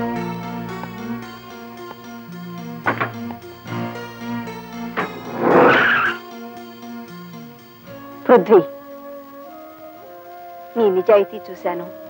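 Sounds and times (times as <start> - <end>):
film background music: 0.0 - 12.0
car tyres screeching: 0.9 - 6.4
car door shutting: 2.8 - 3.4, 4.9 - 6.1.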